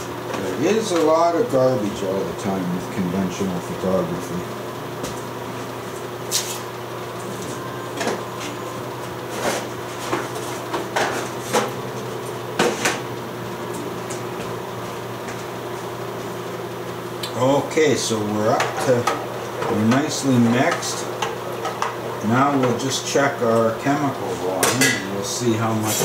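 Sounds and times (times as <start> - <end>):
low electrical hum: 0.0 - 26.0.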